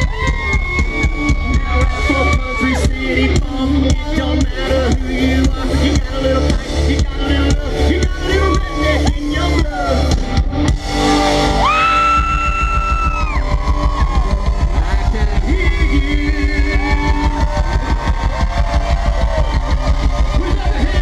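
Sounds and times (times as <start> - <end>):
person singing: 0.0 - 10.4, 13.6 - 21.0
electric guitar: 0.0 - 21.0
live rock band playing loudly: 0.0 - 21.0.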